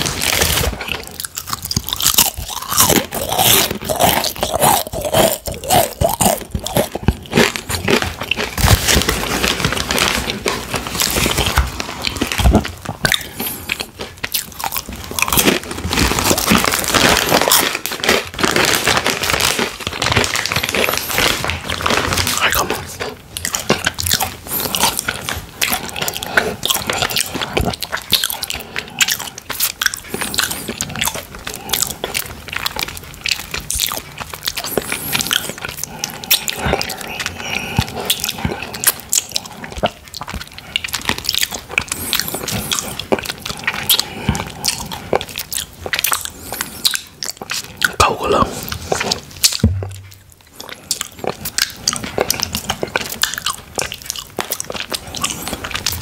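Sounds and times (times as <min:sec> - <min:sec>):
chips crunching in mouth: 0:00.0 - 0:56.0.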